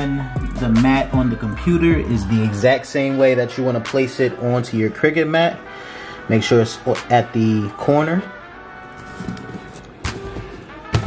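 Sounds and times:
faint background music: 0:00.0 - 0:11.0.

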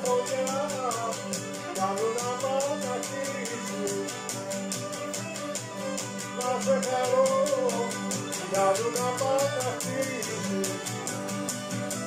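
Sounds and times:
bowed string melody: 0:00.0 - 0:12.0
lute strummed quickly: 0:00.0 - 0:12.0.

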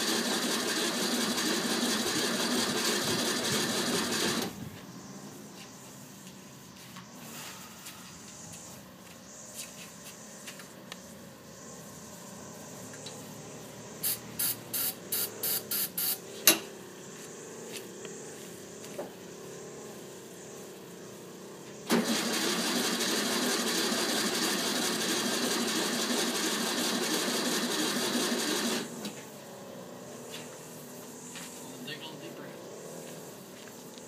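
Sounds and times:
car engine cranking on starter: 0:00.0 - 0:04.6, 0:21.8 - 0:29.2
short bursts: 0:14.0 - 0:16.2.

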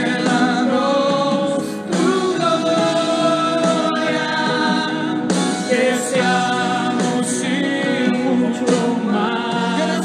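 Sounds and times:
voices singing worship song: 0:00.0 - 0:10.0.

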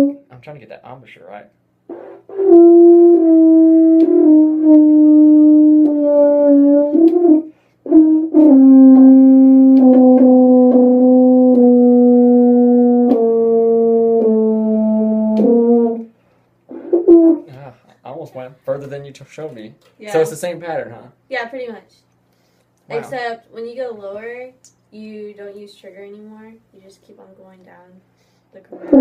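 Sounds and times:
french horn playing held notes: 0:01.9 - 0:16.1
person breathing: 0:07.5 - 0:07.9, 0:22.3 - 0:22.8, 0:28.1 - 0:28.6.

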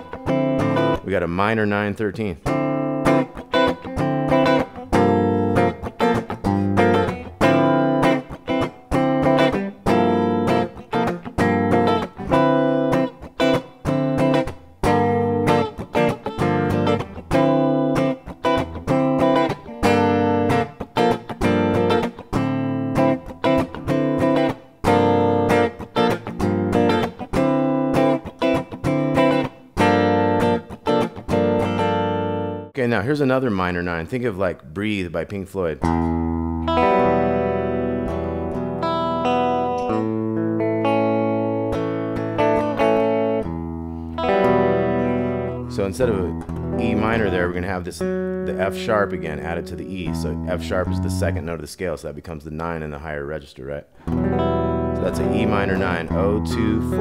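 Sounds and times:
electric guitar strums: 0:00.0 - 0:01.2, 0:02.2 - 0:32.8, 0:35.8 - 0:51.6, 0:54.0 - 0:57.0.

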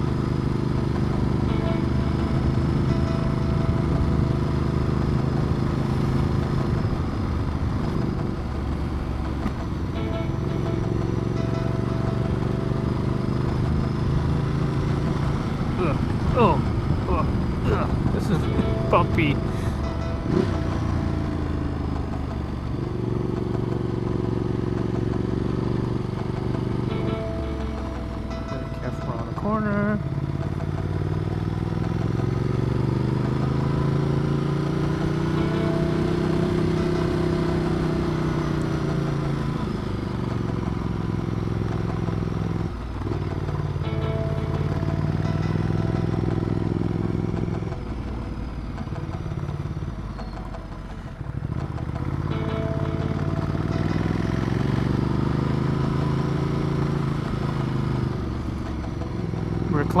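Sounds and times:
motorcycle engine revving: 0:00.0 - 1:00.0
wind and road noise: 0:00.0 - 1:00.0.

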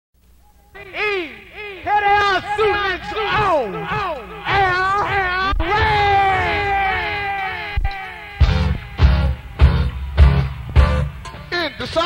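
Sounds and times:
person singing wailing calls: 0:00.5 - 0:09.6.

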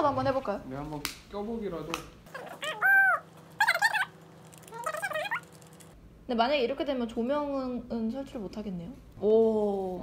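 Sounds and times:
high-pitched voice-like calls: 0:02.3 - 0:05.7.

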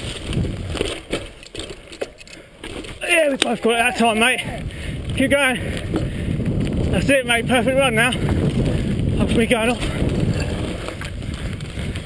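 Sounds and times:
wind on microphone: 0:00.0 - 0:01.0, 0:03.7 - 0:12.0
bike rattling over trail: 0:00.0 - 0:12.0.

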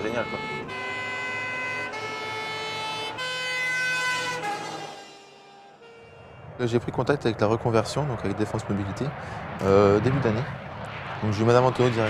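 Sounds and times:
fire truck siren: 0:00.0 - 0:07.1.

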